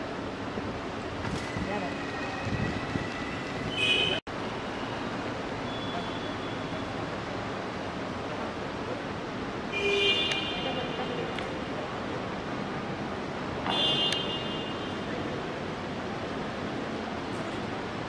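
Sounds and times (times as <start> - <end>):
road traffic noise: 0.0 - 18.0.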